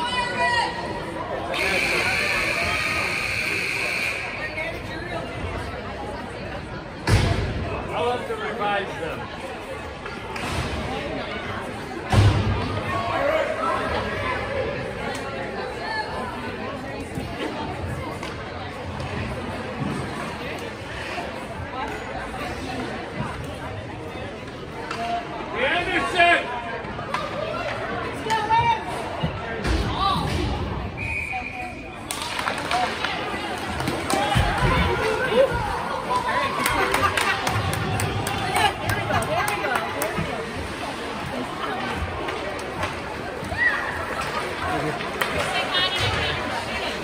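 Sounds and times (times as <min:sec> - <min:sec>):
spectators chattering: 0:00.0 - 0:47.0.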